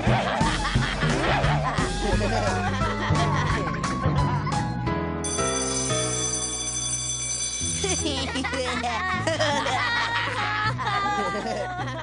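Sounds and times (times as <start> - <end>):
electric school bell ringing: 5.2 - 8.8.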